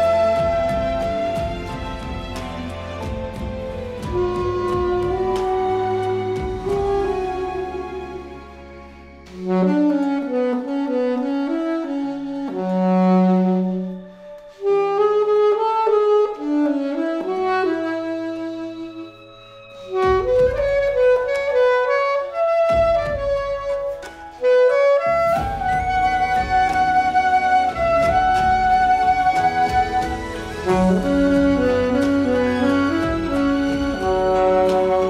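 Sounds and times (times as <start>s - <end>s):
drum beat: 0.0s - 7.7s, 22.7s - 24.0s, 25.3s - 35.0s
alto saxophone melody: 0.0s - 35.0s
bass: 0.0s - 35.0s
recorded accompaniment: 0.0s - 35.0s.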